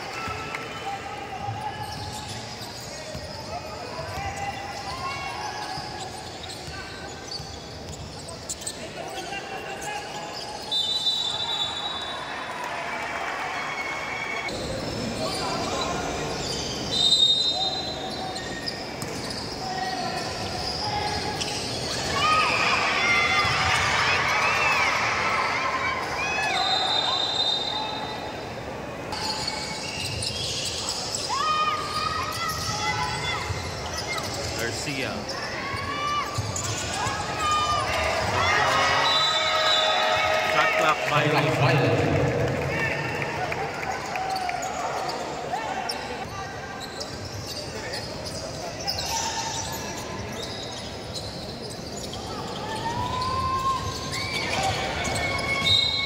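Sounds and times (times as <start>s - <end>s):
shoes squeaking: 1.5s - 11.2s, 14.5s - 22.6s, 43.8s - 56.0s.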